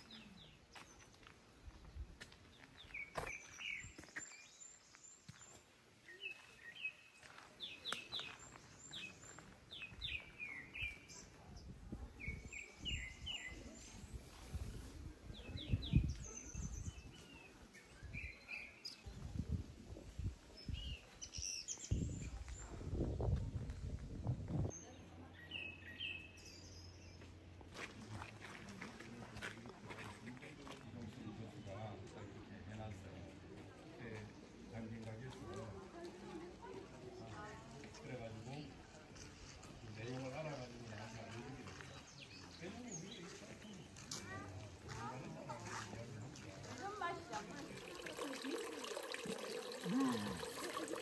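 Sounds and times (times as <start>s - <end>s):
small songbirds chirping: 0.0s - 19.5s, 20.1s - 22.7s
outdoor background noise: 0.0s - 51.0s.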